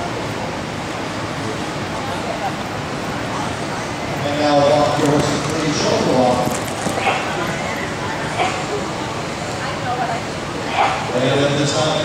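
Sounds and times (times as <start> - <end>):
horse hoofbeats on dirt: 4.9 - 7.3.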